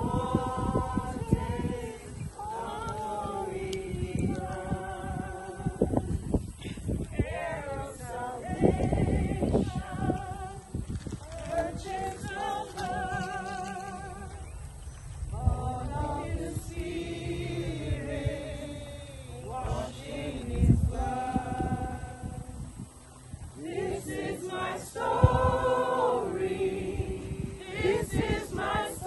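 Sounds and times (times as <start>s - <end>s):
group singing a hymn: 0.0s - 14.6s, 15.3s - 29.0s.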